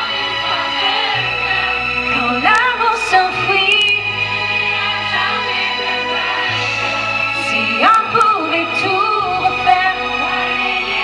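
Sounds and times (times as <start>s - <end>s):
woman singing: 0.0s - 4.1s, 7.4s - 11.0s.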